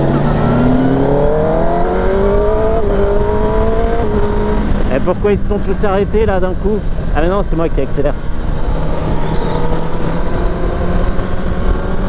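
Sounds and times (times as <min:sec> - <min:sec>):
motorcycle engine accelerating: 0:00.0 - 0:07.1, 0:08.1 - 0:12.0
wind rush: 0:00.0 - 0:12.0.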